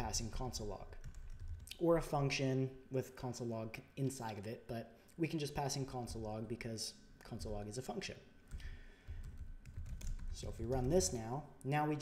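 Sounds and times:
low room rumble: 0.0 - 12.0
soft keyboard keystrokes: 8.5 - 11.1.

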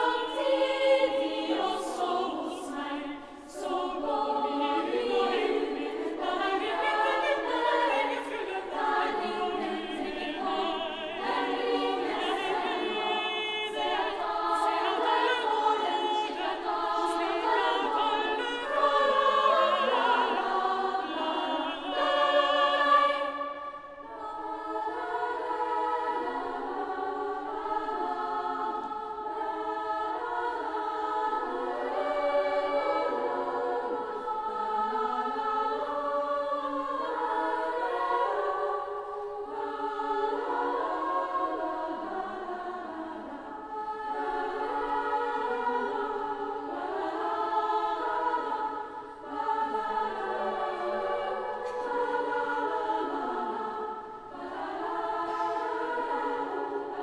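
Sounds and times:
girls' choir singing: 0.0 - 57.0.

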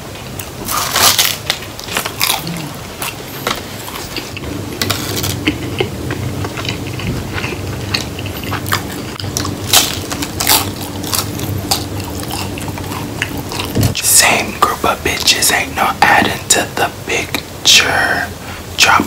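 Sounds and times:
low steady hum: 0.0 - 19.0
person chewing crunchy taco: 0.3 - 15.4
whispered speech: 13.9 - 19.0.

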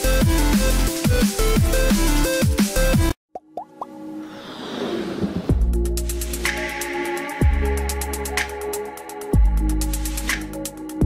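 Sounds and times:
whoosh: 4.2 - 5.8.

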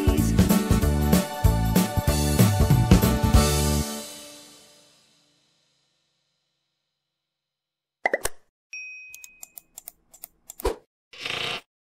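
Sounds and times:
bell-like ding: 8.7 - 9.7.

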